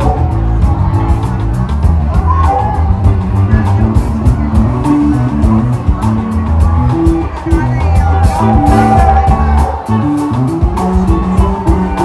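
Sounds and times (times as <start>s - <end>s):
bass line: 0.0s - 12.0s
live band playing: 0.0s - 12.0s
steady drum beat: 0.0s - 12.0s.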